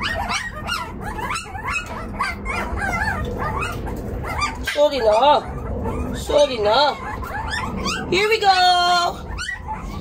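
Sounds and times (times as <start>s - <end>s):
puppies whining and yelping: 0.0s - 10.0s.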